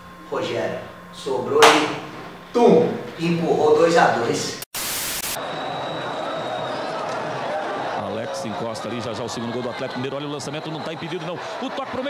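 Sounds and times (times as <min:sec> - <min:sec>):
tv static hiss: 0:00.0 - 0:05.4
stadium crowd murmur: 0:05.4 - 0:12.0.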